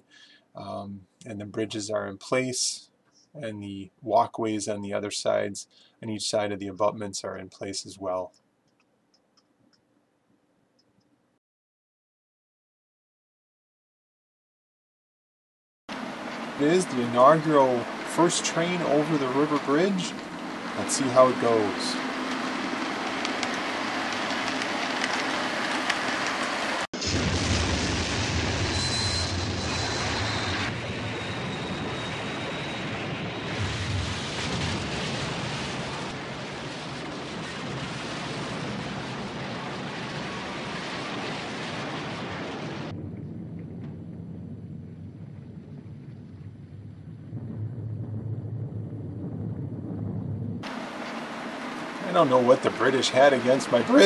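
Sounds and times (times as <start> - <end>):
water crashing: 16.0 - 29.0, 33.6 - 49.5, 50.6 - 54.0
explosion roar: 26.7 - 50.7.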